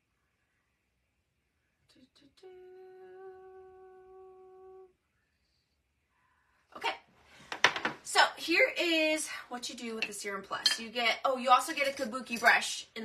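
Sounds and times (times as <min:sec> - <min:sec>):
woman humming: 0:01.9 - 0:05.0.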